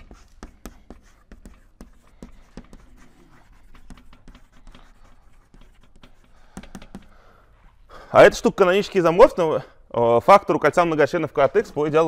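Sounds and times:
chalk tapping and scratching on blackboard: 0.0s - 7.7s.

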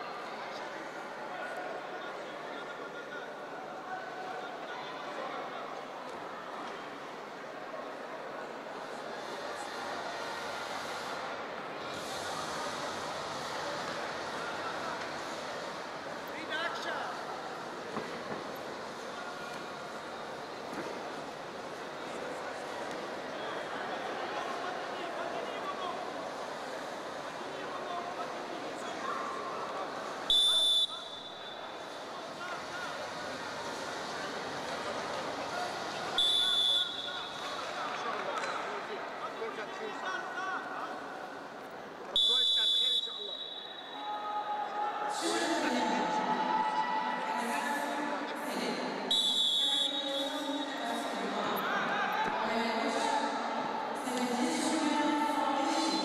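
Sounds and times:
arena hall noise: 0.0s - 56.0s
murmur of voices: 0.0s - 56.0s
referee's whistle blasts: 30.3s - 31.8s, 36.2s - 37.5s, 42.2s - 44.4s, 49.1s - 50.8s.

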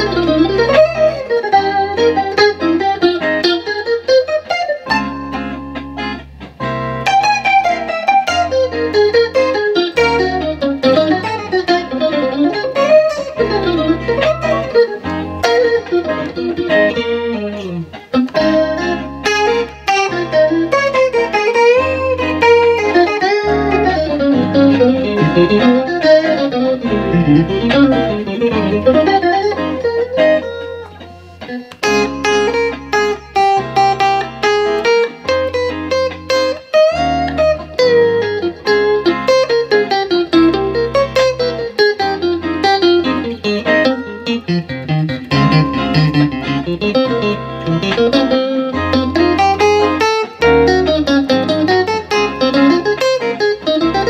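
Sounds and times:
chord backing track: 0.0s - 54.0s
electric guitar melody: 0.0s - 54.0s.

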